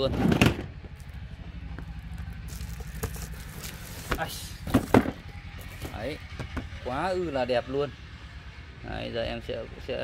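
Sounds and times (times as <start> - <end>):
steady low hum: 0.3 - 10.0
plastic wrap rustling: 2.5 - 5.0.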